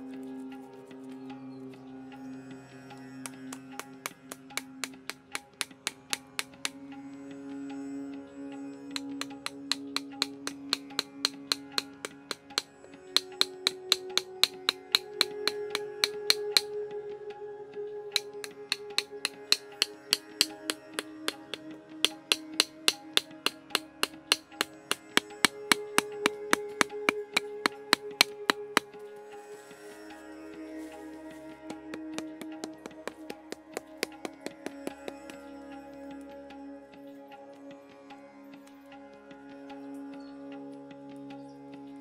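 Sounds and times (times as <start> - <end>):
instrumental background music: 0.0 - 42.0
sharp wooden knocks: 9.0 - 16.7, 18.2 - 28.9, 31.7 - 35.4.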